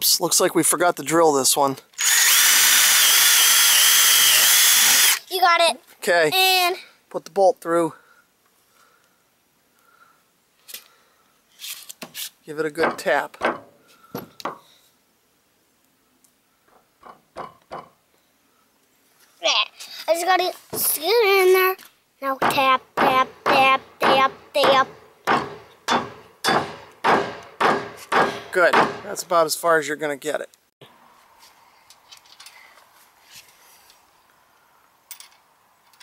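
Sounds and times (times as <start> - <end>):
hammer tapping a bolt into wood: 22.4 - 29.1.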